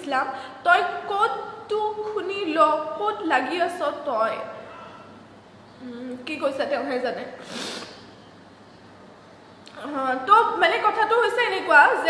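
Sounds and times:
woman's voice: 0:00.0 - 0:04.5, 0:06.0 - 0:07.4, 0:09.7 - 0:12.0
sharp breath through nose: 0:07.4 - 0:08.1.

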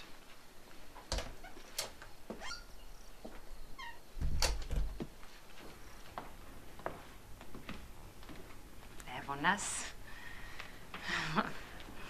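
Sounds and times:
short squeaks: 0:02.4 - 0:02.8
wooden door creaking: 0:03.8 - 0:05.1.

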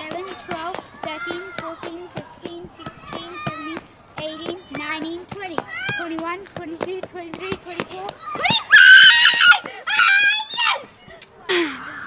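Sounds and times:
boys screaming with excitement: 0:08.3 - 0:10.9.

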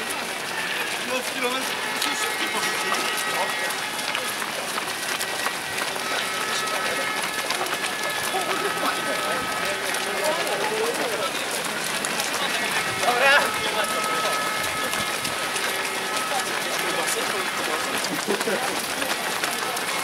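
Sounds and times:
crowd voices: 0:00.0 - 0:20.0
runners' footsteps on wet asphalt: 0:00.0 - 0:20.0.

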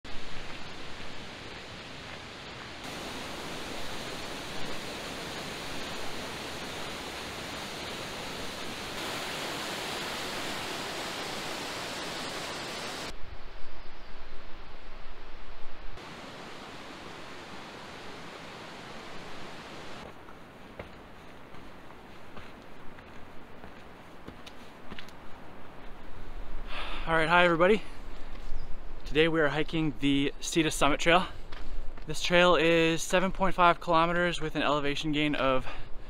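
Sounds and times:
steady rushing hiss: 0:00.1 - 0:13.2, 0:16.0 - 0:20.1
stream cascading over boulders: 0:02.8 - 0:13.1, 0:16.0 - 0:20.1.

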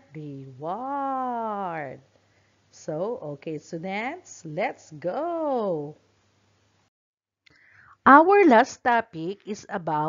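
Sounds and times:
faint room hiss: 0:00.0 - 0:06.9, 0:07.5 - 0:10.0.

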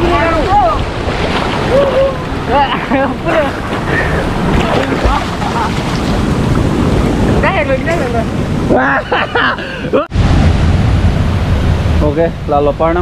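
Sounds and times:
stream water rushing and splashing: 0:00.0 - 0:13.0.

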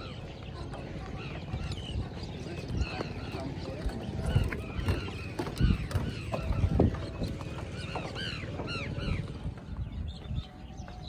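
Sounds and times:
birds calling: 0:00.0 - 0:11.0
footsteps on wooden planks: 0:00.4 - 0:11.0.

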